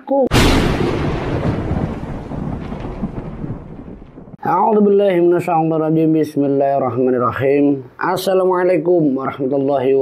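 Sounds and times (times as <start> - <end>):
thunderclap rumbling: 0.3 - 4.4.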